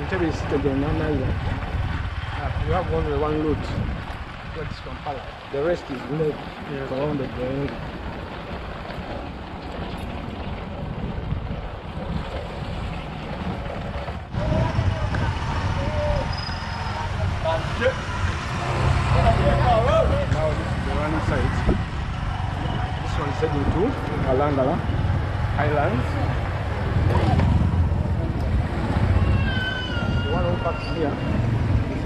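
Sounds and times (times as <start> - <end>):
wind rushing over microphone: 0.0 - 5.5, 6.3 - 32.0
motorcycle engine rumble: 0.0 - 32.0.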